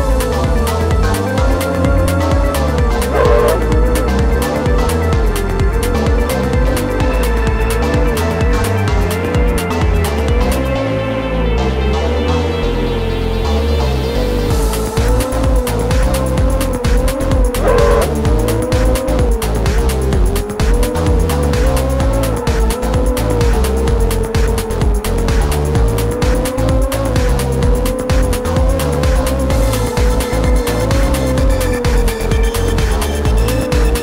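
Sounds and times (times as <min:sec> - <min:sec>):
background music with steady beat: 0:00.0 - 0:34.0
quadcopter motors whining: 0:03.0 - 0:04.0, 0:17.0 - 0:19.6.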